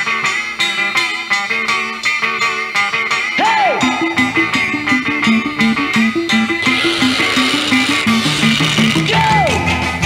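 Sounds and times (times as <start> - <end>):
garage rock band playing: 0.0 - 10.0.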